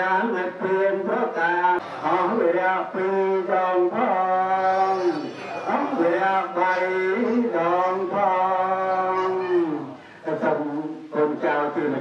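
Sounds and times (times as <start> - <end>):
chanting in a melodic voice: 0.0 - 12.0.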